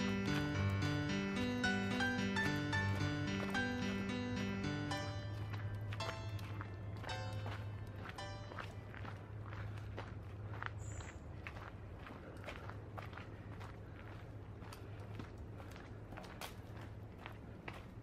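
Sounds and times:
soft background music: 0.0s - 9.4s
footsteps on dirt trail: 0.0s - 18.0s.

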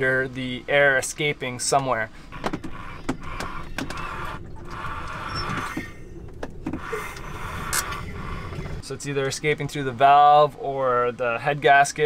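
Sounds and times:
crank and engine clicks and knocks: 1.7s - 6.9s.

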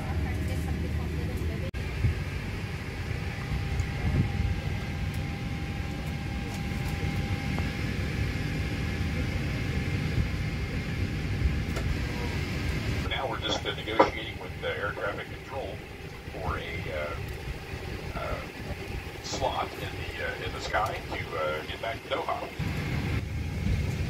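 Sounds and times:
aircraft cabin ventilation hum: 0.0s - 24.0s
faint steady whine: 0.0s - 24.0s.

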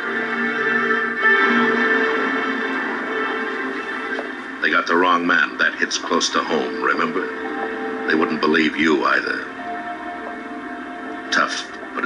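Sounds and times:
sustained drama music on television: 0.0s - 12.0s
man talking: 4.6s - 7.4s, 8.0s - 9.5s, 11.3s - 12.0s.

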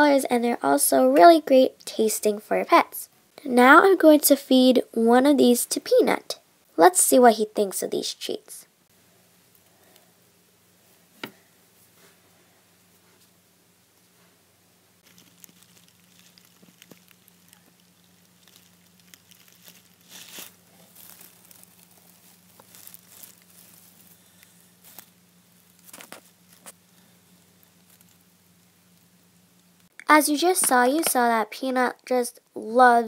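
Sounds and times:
low steady hum: 0.0s - 33.0s
louder crackles: 15.0s - 24.2s
bedding rustling and crinkling: 15.0s - 26.8s.

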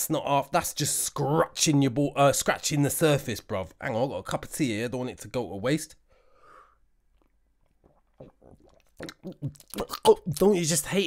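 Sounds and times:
person sipping tea: 6.6s - 10.3s
swallows and mouth clicks: 7.1s - 10.1s.

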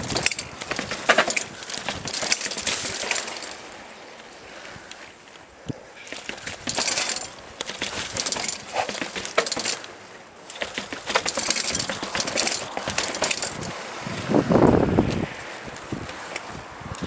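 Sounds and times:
mountain bike chain clattering: 0.0s - 13.9s, 15.8s - 17.0s.

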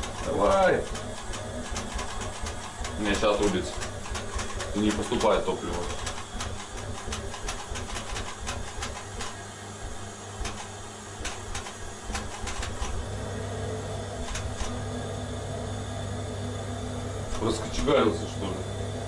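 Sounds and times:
burner clicking: 0.0s - 13.4s, 14.0s - 15.0s
boiler burner humming: 0.0s - 19.0s.

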